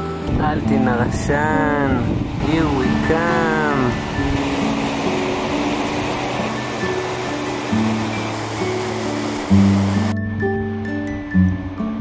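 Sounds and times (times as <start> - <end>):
river rushing: 0.0 - 10.2
music with slow held notes: 0.0 - 12.0.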